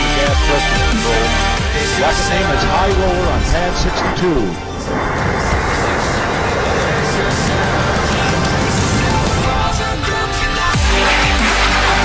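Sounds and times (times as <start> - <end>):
music: 0.0 - 12.0
rocket motor roaring: 0.0 - 12.0.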